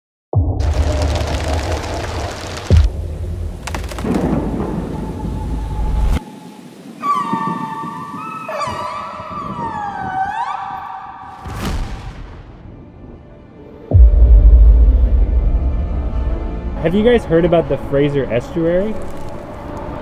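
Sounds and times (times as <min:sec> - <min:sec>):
killer whale calls: 0:07.0 - 0:11.3.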